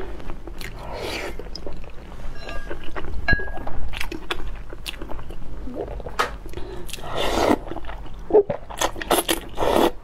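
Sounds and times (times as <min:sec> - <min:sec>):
person chewing food: 0:00.0 - 0:10.0.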